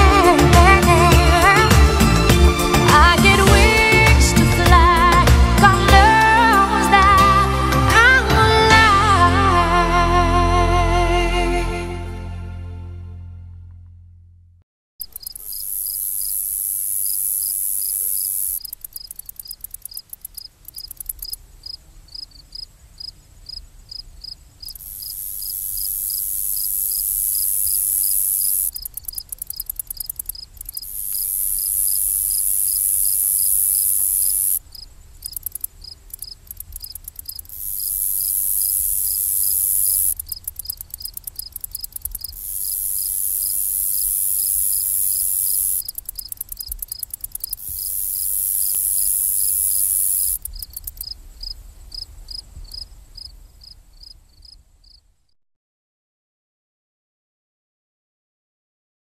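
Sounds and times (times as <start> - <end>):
high buzzing insect song: 0.0 - 7.4, 15.0 - 53.3
cricket chirps: 15.0 - 55.1.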